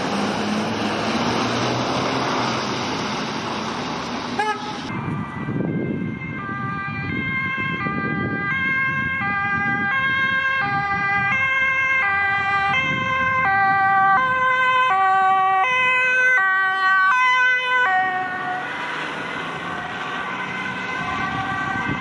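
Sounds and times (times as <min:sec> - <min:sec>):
road and tyre noise: 0:00.0 - 0:22.0
ambulance two-tone siren: 0:04.4 - 0:22.0.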